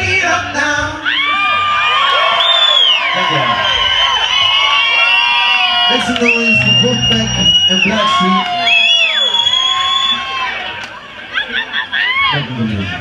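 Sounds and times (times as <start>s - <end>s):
audience cheering and whooping: 1.0s - 12.8s
high whistle: 2.2s - 10.4s
band playing: 5.8s - 9.0s.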